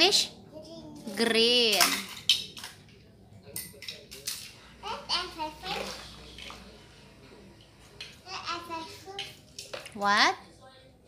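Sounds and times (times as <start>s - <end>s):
young child's voice: 0.5s - 1.1s.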